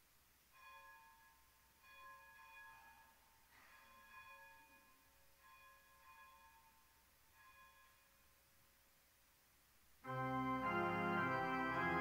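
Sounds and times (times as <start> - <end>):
church organ chords: 10.0 - 12.0.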